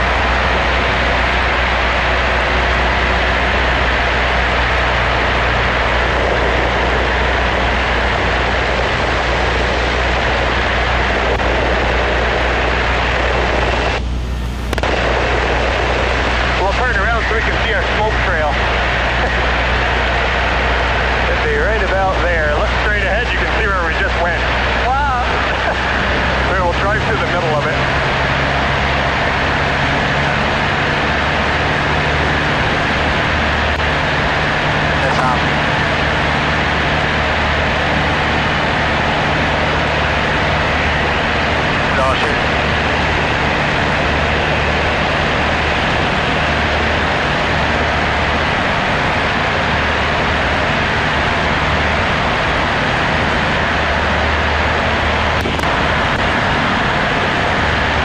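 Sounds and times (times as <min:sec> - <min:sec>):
airplane engine and propeller droning: 0:00.0 - 0:58.0.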